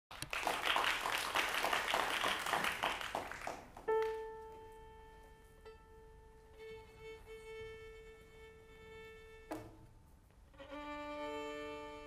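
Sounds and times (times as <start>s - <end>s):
audience applause: 0.1s - 4.2s.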